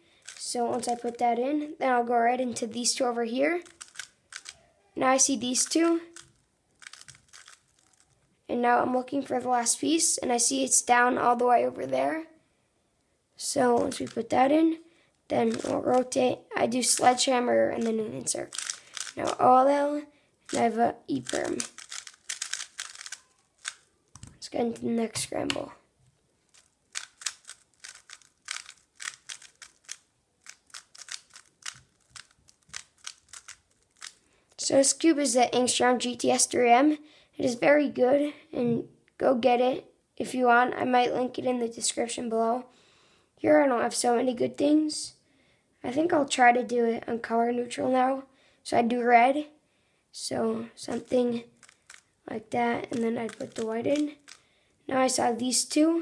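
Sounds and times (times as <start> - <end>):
puzzle cube clicking as turned: 0.2 - 1.2, 3.6 - 4.6, 5.6 - 8.2, 15.5 - 16.1, 16.9 - 17.2, 17.8 - 19.4, 20.5 - 24.4, 26.5 - 34.2, 50.9 - 52.1, 52.9 - 54.4.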